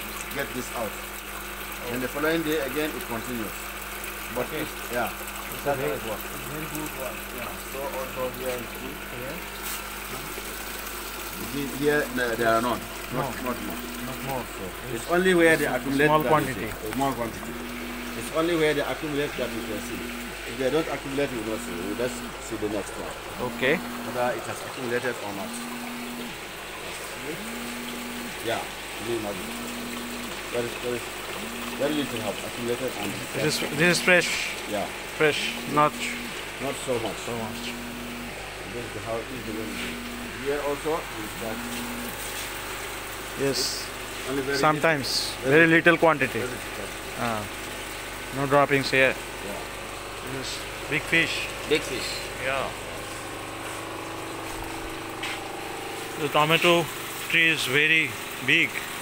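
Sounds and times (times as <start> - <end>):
trickle of running water: 0.0 - 59.0.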